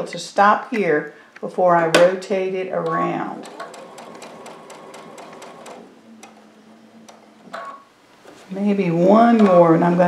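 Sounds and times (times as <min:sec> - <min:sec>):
sewing machine stitching: 0:02.9 - 0:07.7.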